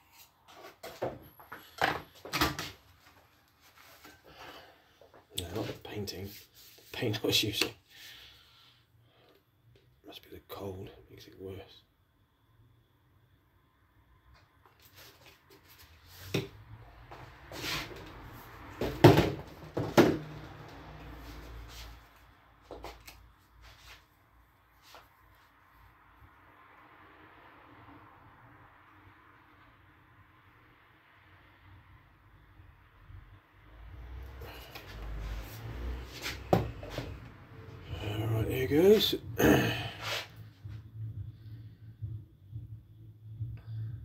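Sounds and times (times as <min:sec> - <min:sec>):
objects knocking and clunking: 0:18.0 - 0:20.9
low hum: 0:40.4 - 0:44.0.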